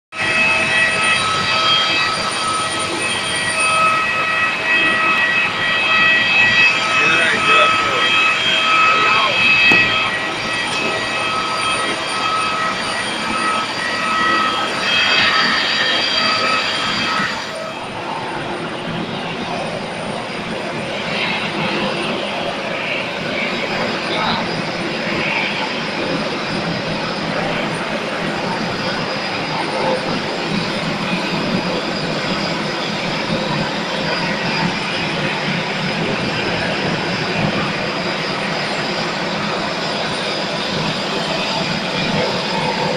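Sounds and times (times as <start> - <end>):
jet turbine whine: 0.1 - 42.9
broad rushing noise: 4.3 - 23.0.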